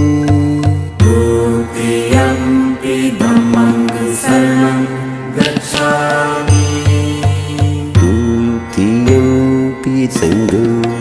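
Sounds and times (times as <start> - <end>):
music with chanting voice: 0.0 - 11.0.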